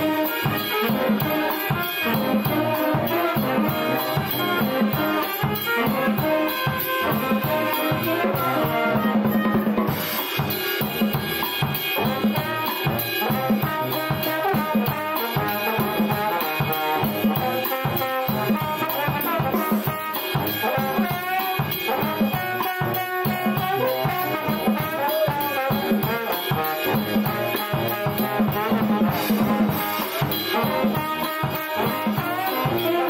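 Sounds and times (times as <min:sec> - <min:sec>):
brass band playing: 0:00.0 - 0:33.0
drum kit beat: 0:00.0 - 0:33.0.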